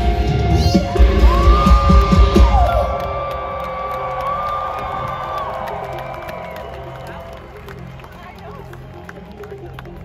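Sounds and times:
crowd cheering: 0:00.8 - 0:10.0.

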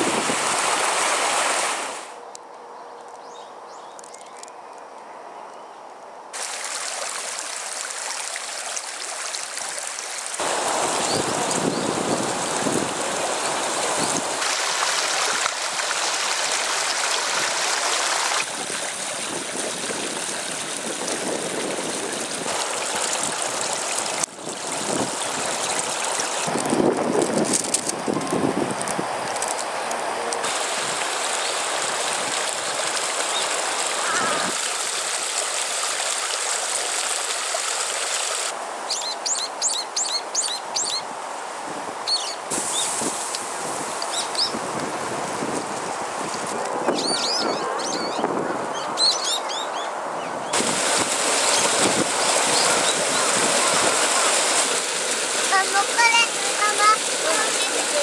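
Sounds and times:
water rushing over rocks: 0:00.0 - 0:02.2, 0:06.4 - 0:38.6, 0:42.5 - 0:47.1, 0:50.5 - 0:58.0
bird chirping: 0:48.8 - 0:50.4.

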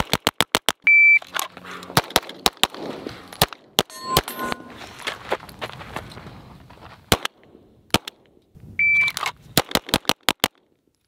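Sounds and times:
shot timer beep: 0:03.9 - 0:04.8.

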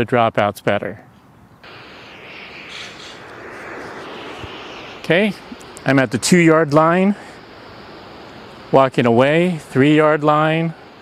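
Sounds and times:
white noise from phone speaker: 0:01.6 - 0:11.0.

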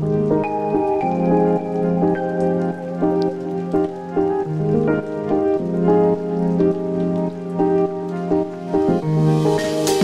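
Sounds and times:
sustained keyboard notes: 0:00.0 - 0:10.0.

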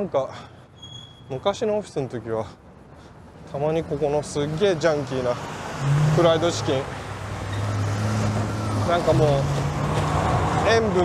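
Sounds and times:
street traffic: 0:00.0 - 0:11.0
truck engine passing: 0:03.0 - 0:11.0.

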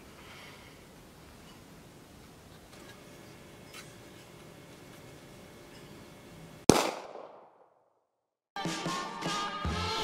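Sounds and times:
pistol shot: 0:06.7 - 0:07.8.

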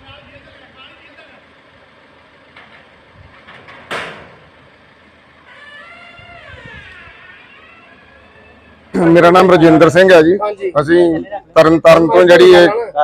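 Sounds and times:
vehicle engine running low: 0:00.0 - 0:11.8.

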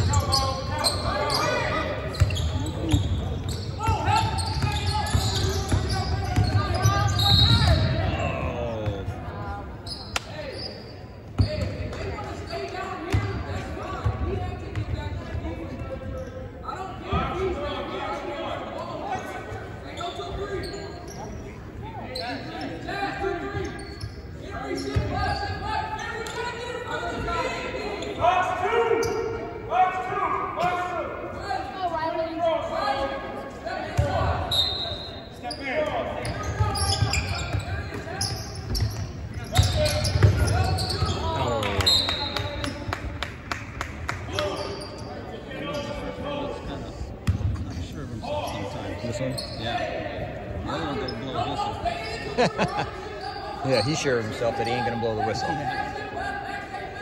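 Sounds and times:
echoing voices talking: 0:00.0 - 0:57.0.

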